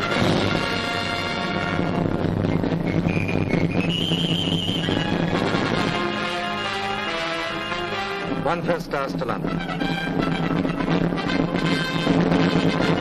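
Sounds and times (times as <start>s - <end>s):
orchestral music with brass: 0.0s - 13.0s.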